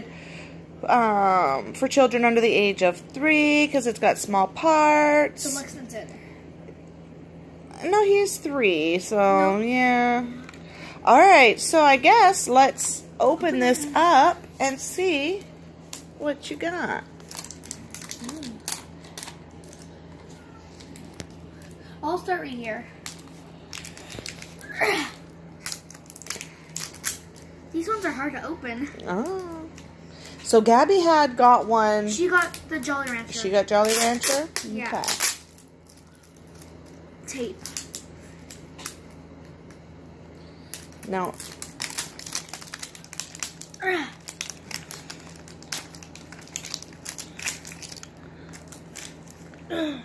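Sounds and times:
plastic package handling clicks: 40.7s - 49.6s.

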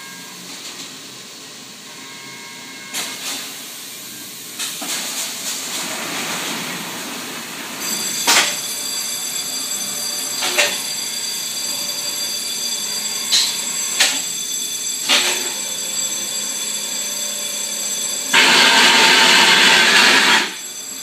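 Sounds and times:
machine humming: 5.8s - 21.0s.

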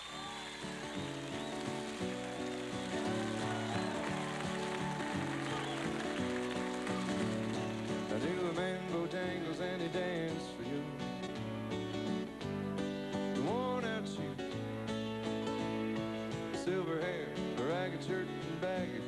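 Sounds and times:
acoustic guitars playing folk: 0.0s - 19.0s.

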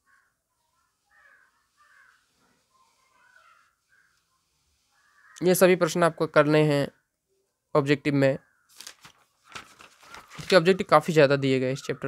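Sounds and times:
faint short bird calls: 0.0s - 5.4s.

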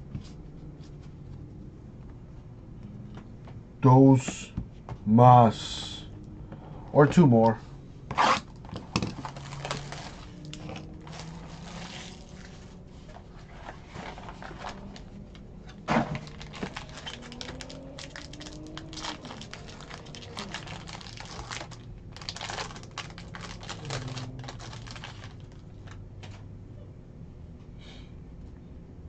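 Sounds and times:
foil wrappers crinkling and tearing: 8.3s - 12.7s, 15.9s - 26.0s.

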